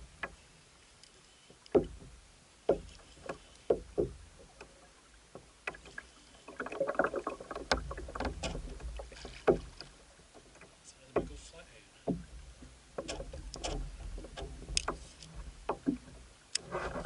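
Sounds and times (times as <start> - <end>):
fishing rod knocks and clicks: 1.0 - 2.1, 2.7 - 4.7, 7.6 - 9.9, 12.1 - 12.4, 13.0 - 16.7.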